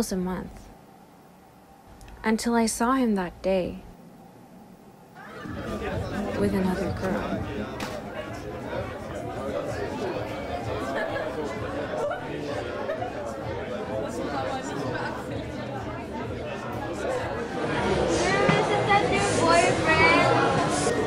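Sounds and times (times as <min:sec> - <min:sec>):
young women chatting: 0:00.0 - 0:00.7, 0:02.1 - 0:03.9, 0:06.2 - 0:07.4.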